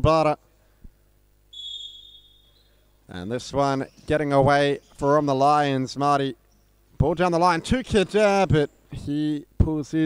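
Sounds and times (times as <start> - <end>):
referee's whistle: 1.5 - 2.9.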